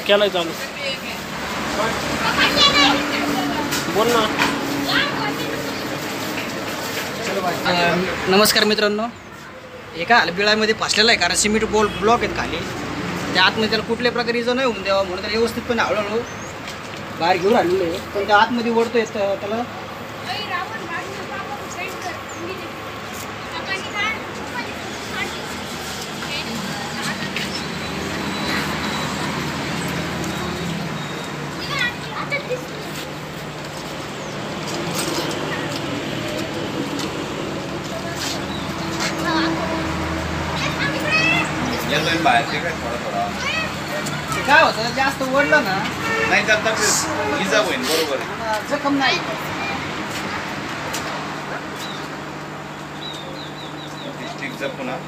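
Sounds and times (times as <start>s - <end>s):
steady road traffic: 0.0s - 55.0s
high-pitched voices calling out: 2.0s - 4.0s, 4.6s - 6.3s, 20.2s - 34.1s, 37.7s - 44.8s.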